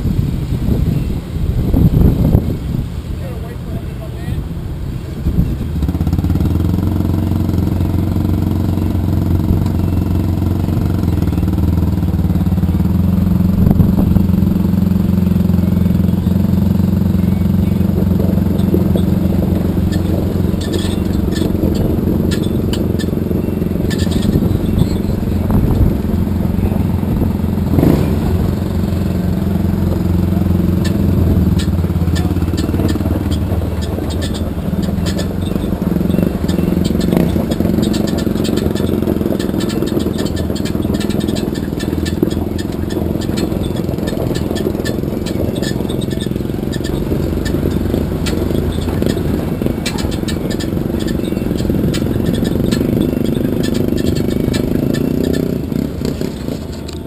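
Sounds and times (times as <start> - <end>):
truck engine running: 0.0 - 57.0
tyres crackling on gravel: 14.4 - 57.0.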